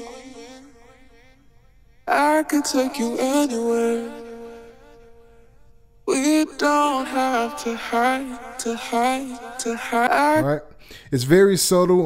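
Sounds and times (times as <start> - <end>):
distorted sung vocal with reverb: 0.0 - 11.3.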